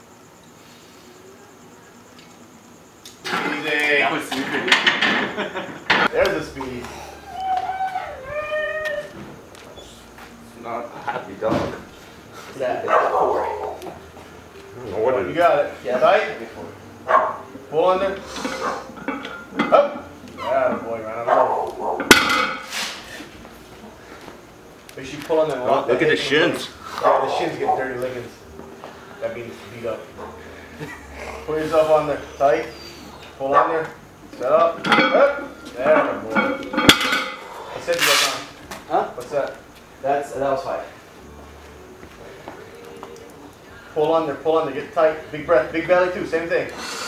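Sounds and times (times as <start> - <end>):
barbell plates clanking: 18.4 - 20.9, 22.0 - 22.7, 34.7 - 38.3.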